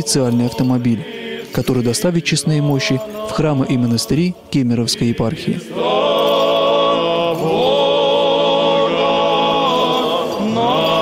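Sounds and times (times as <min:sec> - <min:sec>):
male voices chanting: 0:00.0 - 0:11.0.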